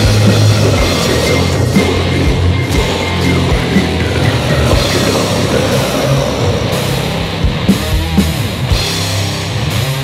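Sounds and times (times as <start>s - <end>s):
metal band playing: 0.0s - 10.0s.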